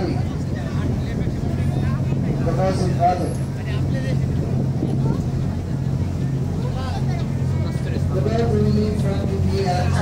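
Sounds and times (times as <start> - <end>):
ferry engines humming: 0.0 - 10.0.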